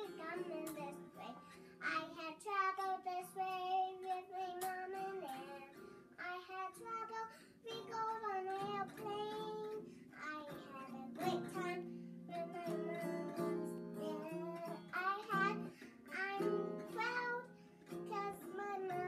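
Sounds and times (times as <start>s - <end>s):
acoustic guitar: 0.0s - 19.0s
girl singing: 0.0s - 19.0s.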